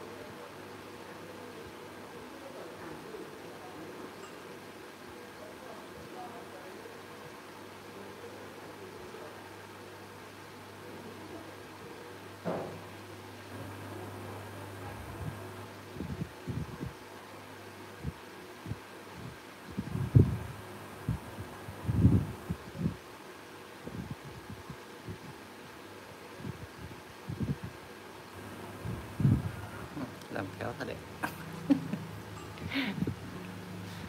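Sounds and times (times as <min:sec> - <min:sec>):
steady low hum: 0:12.9 - 0:17.0, 0:17.8 - 0:23.0, 0:26.4 - 0:34.0.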